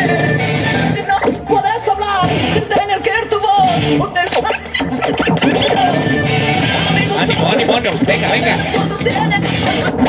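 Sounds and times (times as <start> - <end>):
dj scratching: 0.0 - 10.0
music track playing: 0.0 - 10.0.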